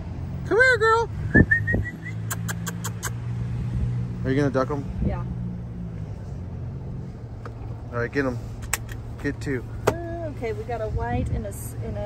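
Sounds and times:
car engine low hum: 0:00.0 - 0:12.0.

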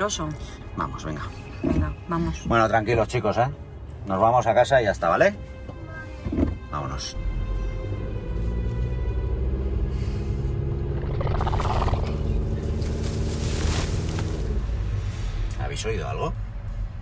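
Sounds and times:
suspenseful music with sustained chords: 0:00.0 - 0:17.0
low rumble: 0:09.9 - 0:15.6
growling dinosaur roar: 0:10.8 - 0:12.5.

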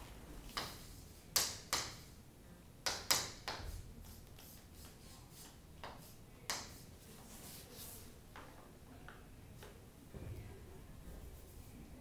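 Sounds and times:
chalk scratching on chalkboard: 0:03.2 - 0:08.2.

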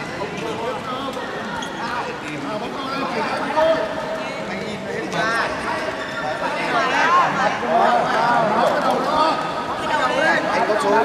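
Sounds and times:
people shouting and chattering: 0:00.0 - 0:11.0.

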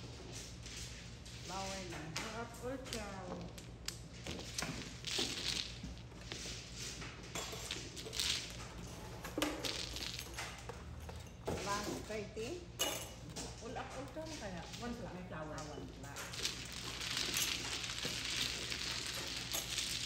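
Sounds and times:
mahjong tiles clattering: 0:07.4 - 0:11.0, 0:15.9 - 0:20.0.

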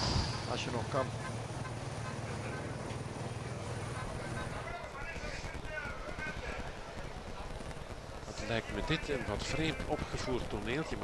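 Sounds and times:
faint voices: 0:00.4 - 0:11.0.

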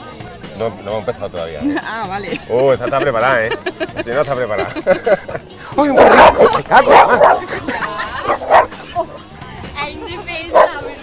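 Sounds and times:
dog barking: 0:05.8 - 0:07.5, 0:08.2 - 0:08.8, 0:10.5 - 0:11.0.

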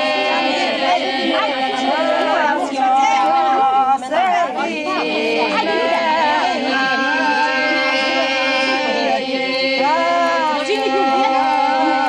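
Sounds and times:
women singing: 0:00.0 - 0:12.0
women talking: 0:00.0 - 0:12.0.

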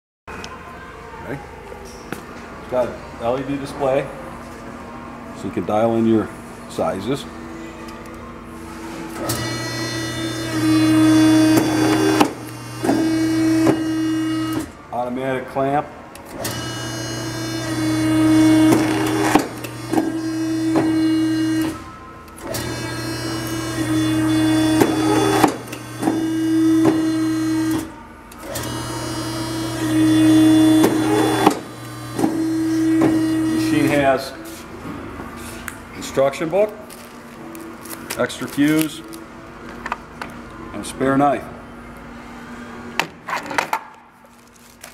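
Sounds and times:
hydraulic pump hum with whine: 0:03.3 - 0:14.9, 0:16.1 - 0:38.2.

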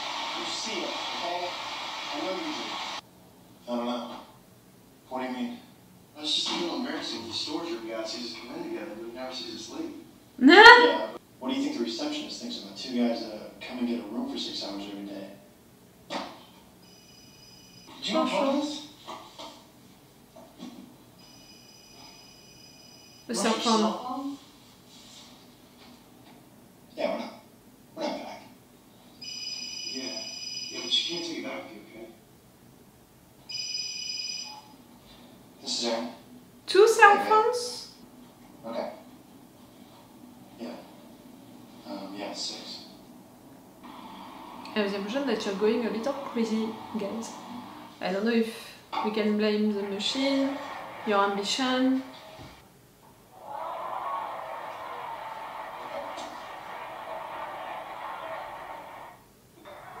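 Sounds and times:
cell phone ringing: 0:16.8 - 0:18.0, 0:21.2 - 0:23.4, 0:29.2 - 0:31.1, 0:33.5 - 0:34.8.

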